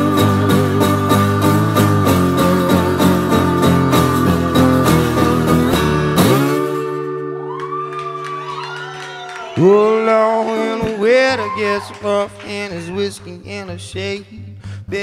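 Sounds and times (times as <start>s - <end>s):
acoustic slide guitar: 0.0s - 7.8s.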